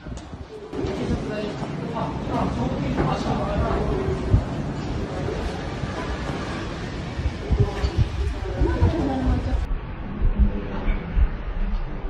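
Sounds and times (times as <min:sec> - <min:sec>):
people talking: 0:00.2 - 0:09.7.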